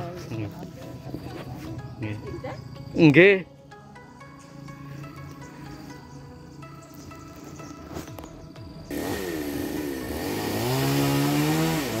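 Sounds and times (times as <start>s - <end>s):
small petrol engine starting: 8.9s - 12.0s.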